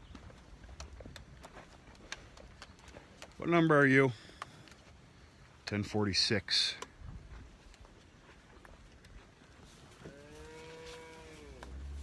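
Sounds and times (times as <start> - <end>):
cattle mooing: 10.0 - 12.0.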